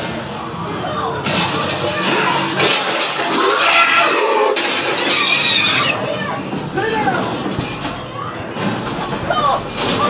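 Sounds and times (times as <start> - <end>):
creature shrieks and snarls: 3.3 - 6.0.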